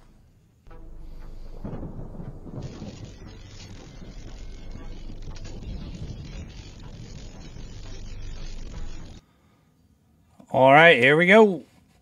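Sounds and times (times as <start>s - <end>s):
deep thunder-like rumble: 0.7s - 9.2s
rain-like hiss: 0.7s - 9.2s.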